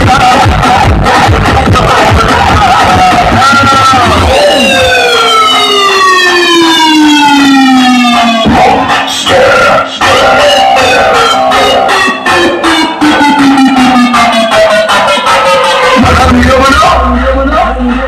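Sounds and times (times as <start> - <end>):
dj music over sound system: 0.0 - 18.0
bass hit: 16.0 - 18.0.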